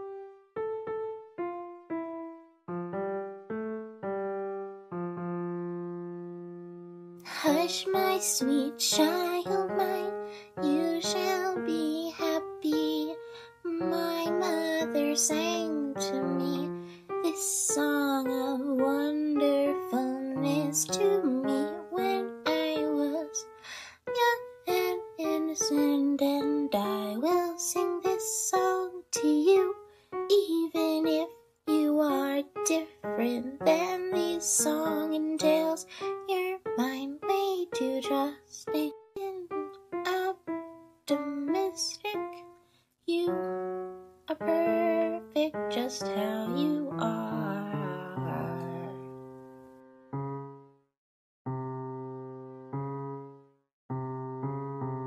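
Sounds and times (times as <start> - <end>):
person singing a lullaby: 7.2 - 49.3.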